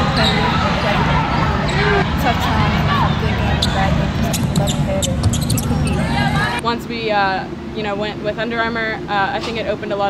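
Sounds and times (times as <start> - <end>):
voices: 0.0 - 10.0
basketball bouncing on court: 3.6 - 5.8.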